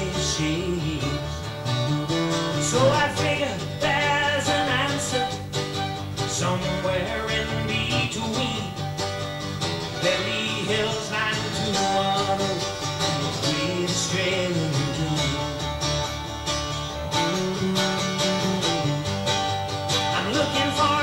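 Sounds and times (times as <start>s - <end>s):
live country band music: 0.0s - 21.0s.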